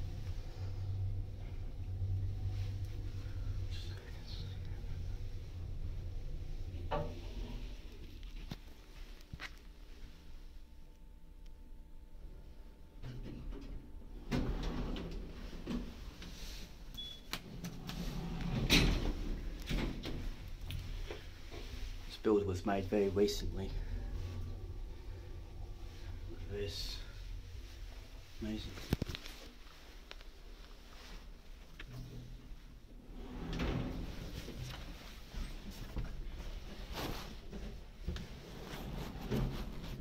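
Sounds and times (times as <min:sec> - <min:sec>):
low steady hum: 0:00.0 - 0:40.0
sliding doors closing clunks: 0:13.1 - 0:22.0, 0:33.0 - 0:40.0.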